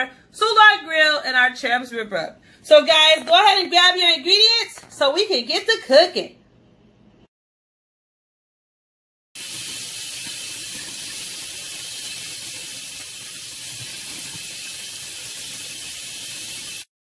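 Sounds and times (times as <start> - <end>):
tap water running into strainer: 9.4 - 16.9.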